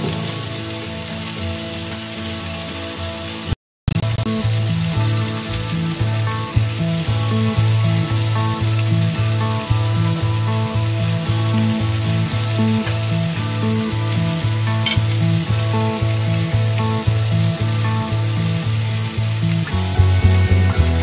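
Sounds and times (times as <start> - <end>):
background music with beat: 19.6 - 21.0.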